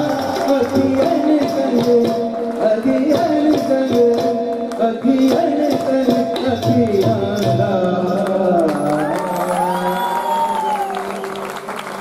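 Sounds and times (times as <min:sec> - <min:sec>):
audience applause: 0:08.7 - 0:12.0.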